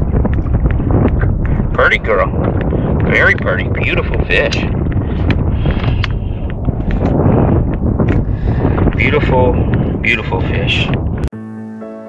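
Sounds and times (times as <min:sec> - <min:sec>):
wind buffeting microphone: 0:00.0 - 0:11.3.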